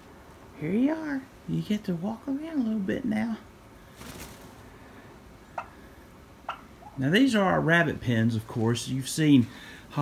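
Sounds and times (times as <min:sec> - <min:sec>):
turkey hens calling: 0:03.7 - 0:08.0.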